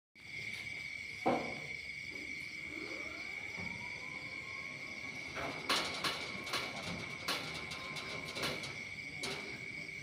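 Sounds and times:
crickets trilling: 0:00.2 - 0:10.0
faint rising whine: 0:02.1 - 0:10.0.

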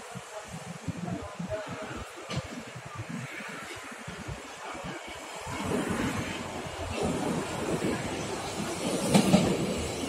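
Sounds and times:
train rumbling: 0:00.3 - 0:10.0
wheels clacking over rail joints: 0:06.4 - 0:10.0.

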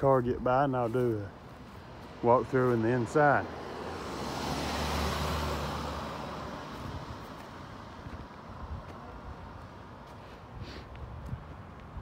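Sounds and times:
car driving past: 0:03.0 - 0:08.6.

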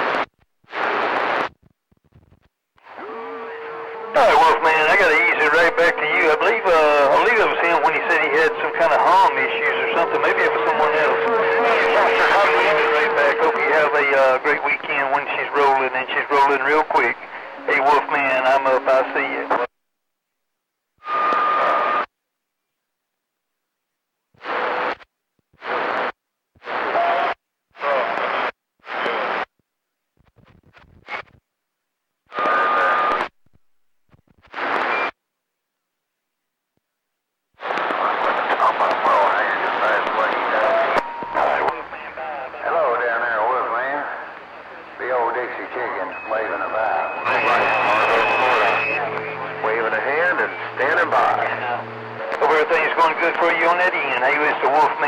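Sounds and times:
radio static bursts: 0:02.8 - 0:19.7, 0:37.6 - 0:55.0
garbled radio voices: 0:02.9 - 0:19.7, 0:37.6 - 0:55.0
steady whistling tones: 0:46.0 - 0:51.9.

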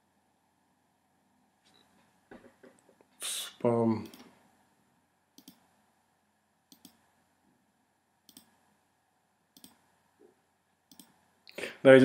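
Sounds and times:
computer mouse clicks: 0:05.4 - 0:05.7, 0:06.7 - 0:07.0, 0:08.3 - 0:08.6, 0:09.6 - 0:09.8, 0:10.9 - 0:11.2.

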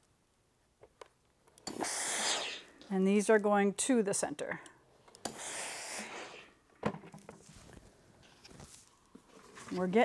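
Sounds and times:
iron steam hiss: 0:01.7 - 0:02.8, 0:05.3 - 0:06.6.

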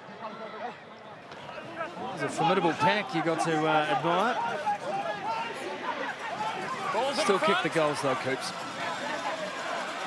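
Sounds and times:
stadium crowd murmur: 0:00.0 - 0:10.0.

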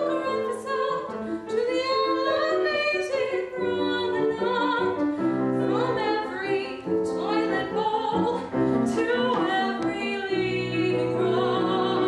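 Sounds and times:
piano accompaniment: 0:00.0 - 0:12.0
woman singing soprano: 0:00.0 - 0:12.0.

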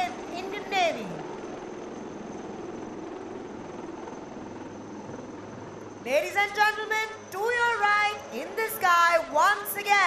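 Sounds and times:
helicopter flying past: 0:00.0 - 0:10.0.

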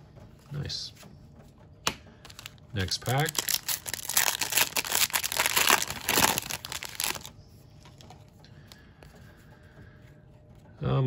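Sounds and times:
foil wrapper tearing and crinkling: 0:02.3 - 0:07.3.

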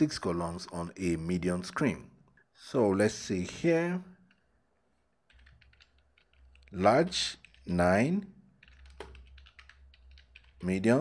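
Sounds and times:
faint keyboard keystrokes: 0:05.3 - 0:07.7, 0:08.6 - 0:10.8.

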